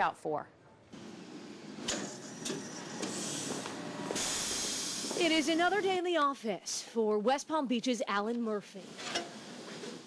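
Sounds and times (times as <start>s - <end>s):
steady hiss: 3.1s - 5.8s.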